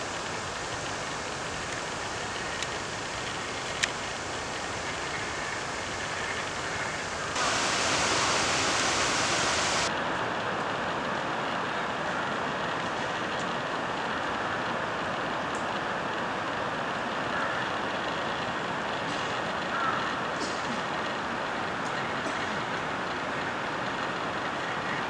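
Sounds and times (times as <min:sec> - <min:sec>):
steady rushing noise: 0:00.3 - 0:09.9.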